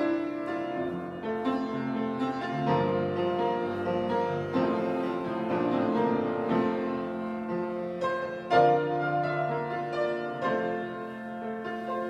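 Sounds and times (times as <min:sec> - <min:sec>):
solo piano chords: 0:00.0 - 0:12.0.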